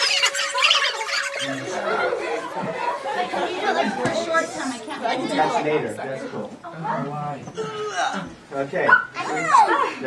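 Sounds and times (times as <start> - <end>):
children yipping and barking: 0.0 - 3.9.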